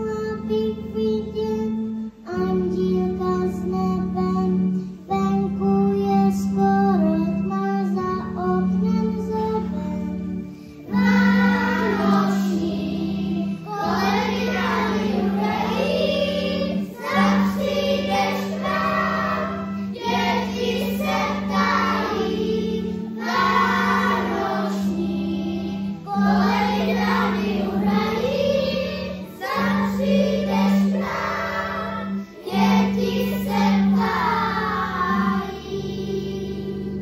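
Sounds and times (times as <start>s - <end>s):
children's choir singing: 10.8s - 37.0s.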